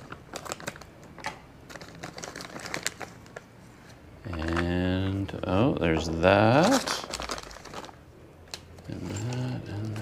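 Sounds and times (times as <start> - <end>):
plastic bag crinkling: 0.0 - 3.4, 4.3 - 10.0.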